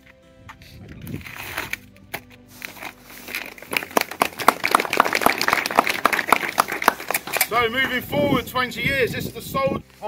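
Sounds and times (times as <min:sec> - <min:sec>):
audience clapping: 0:03.6 - 0:07.6.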